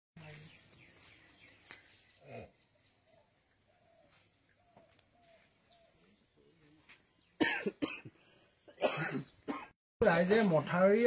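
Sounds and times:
person coughing: 0:07.4 - 0:09.7.

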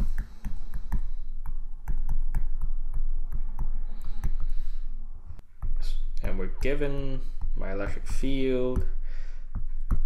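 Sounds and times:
stylus tapping on tablet: 0:00.0 - 0:04.8, 0:05.4 - 0:10.0
steady low hum: 0:00.0 - 0:10.0.

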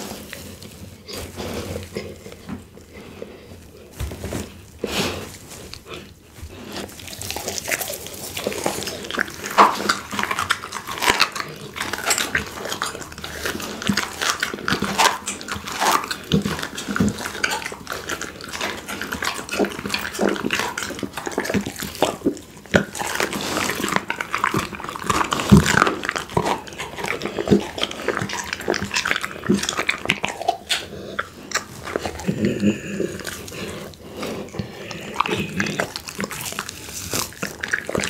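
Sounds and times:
dog chewing wet bites: 0:04.5 - 0:38.0
bone crunching: 0:06.5 - 0:38.0.

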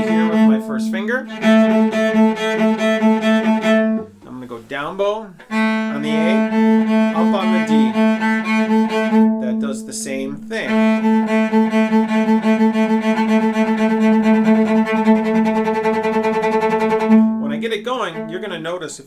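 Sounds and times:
cello fast bouncing bow strokes: 0:00.0 - 0:18.9.

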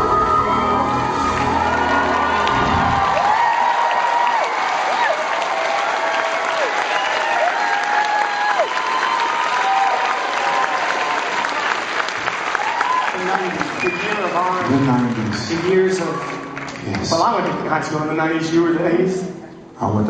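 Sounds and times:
crowd cheering with long whoops: 0:00.0 - 0:17.2
audience applauding: 0:00.4 - 0:18.0.

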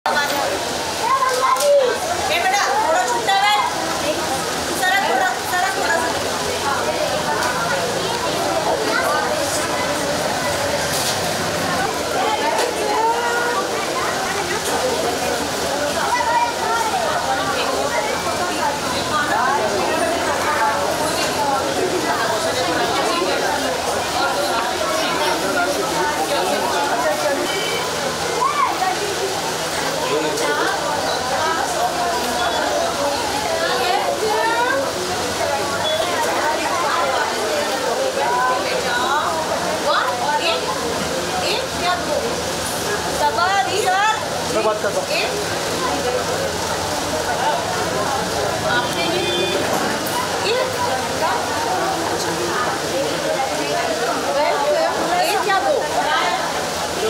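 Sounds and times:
children chattering: 0:00.0 - 0:57.0.

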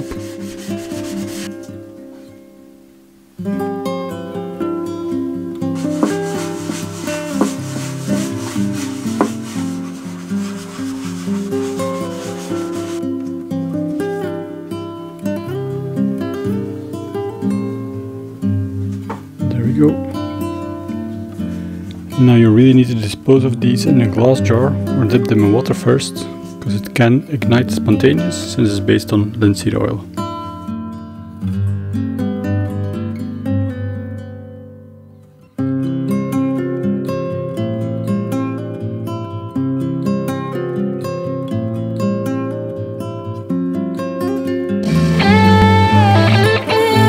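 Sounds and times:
scrubbing pad rubbing wood: 0:00.0 - 0:01.6, 0:05.8 - 0:13.1, 0:44.9 - 0:47.0
acoustic guitar music: 0:00.0 - 0:47.0.

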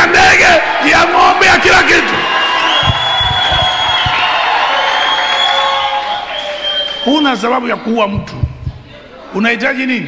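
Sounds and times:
congregation cheering and shouting: 0:00.0 - 0:07.6.

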